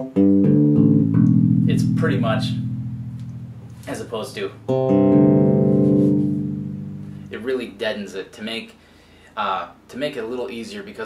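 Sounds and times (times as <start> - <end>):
electric bass plucked: 0.0 - 7.5.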